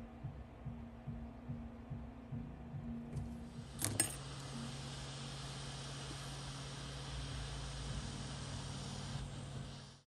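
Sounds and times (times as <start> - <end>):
hot-air station hiss and hum: 0.0 - 10.0
metallic clinks: 3.8 - 4.2.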